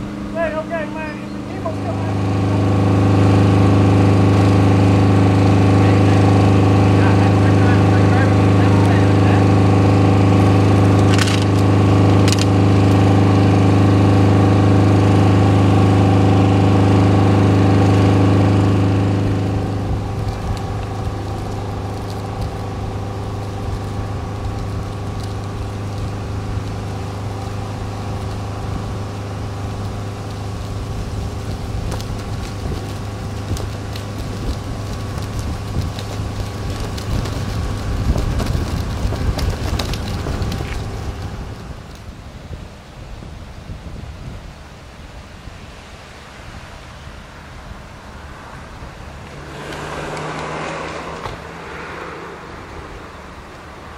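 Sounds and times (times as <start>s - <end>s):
engine idling: 0.0s - 42.1s.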